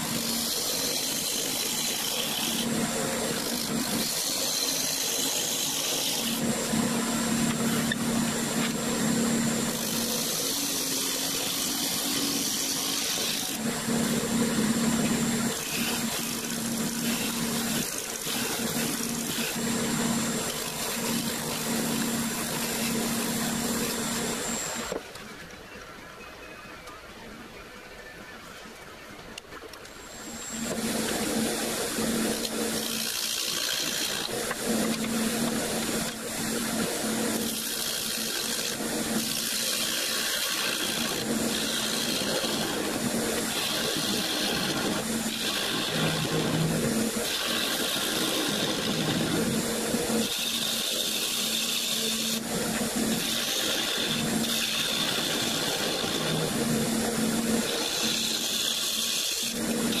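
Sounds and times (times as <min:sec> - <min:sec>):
wood lathe cutting hiss: 0:00.0 - 0:25.0, 0:30.0 - 1:00.0.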